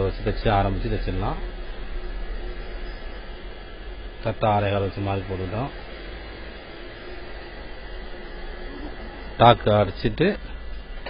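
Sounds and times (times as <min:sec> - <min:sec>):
motor or fan humming: 0:00.0 - 0:11.0.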